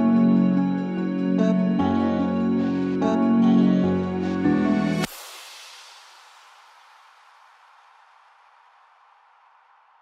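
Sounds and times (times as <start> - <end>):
faint hiss: 5.0 - 10.0.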